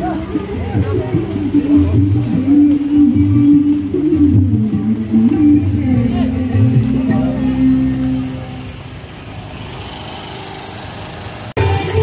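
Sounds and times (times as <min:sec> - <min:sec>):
music: 0:00.0 - 0:08.5, 0:11.6 - 0:12.0
small engine running: 0:07.2 - 0:12.0.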